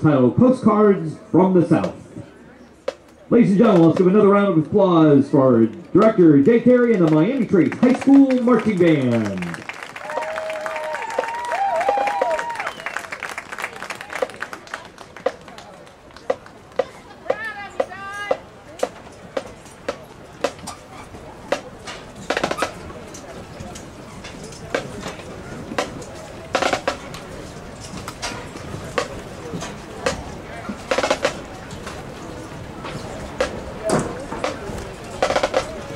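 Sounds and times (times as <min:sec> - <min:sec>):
crowd chatter: 0:00.0 - 0:35.9
marching band drums tapping: 0:02.8 - 0:04.3, 0:11.0 - 0:12.7, 0:13.6 - 0:35.9
crowd cheering: 0:06.8 - 0:18.4.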